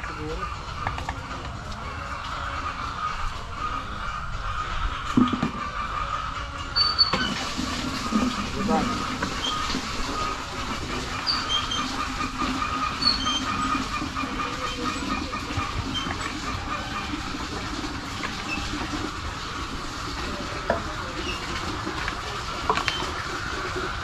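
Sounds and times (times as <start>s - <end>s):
steady mechanical drone: 0.0s - 7.0s, 8.0s - 24.0s.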